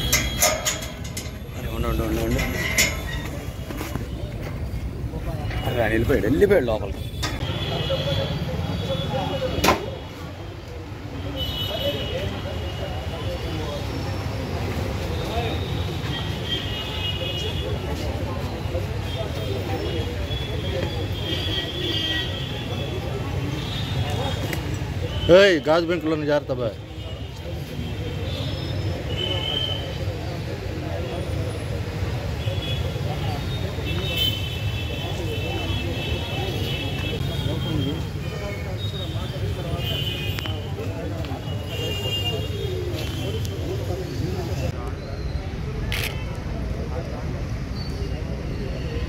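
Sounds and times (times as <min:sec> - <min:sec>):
people talking indistinctly: 0:00.0 - 0:49.0
street traffic rumble: 0:00.0 - 0:49.0.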